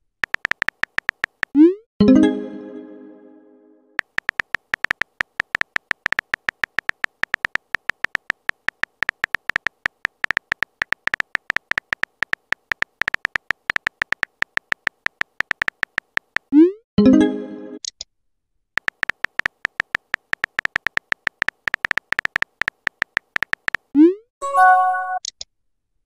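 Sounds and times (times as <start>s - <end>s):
electronic key ticks: 0.2s - 1.6s, 4.0s - 16.5s, 18.8s - 23.9s.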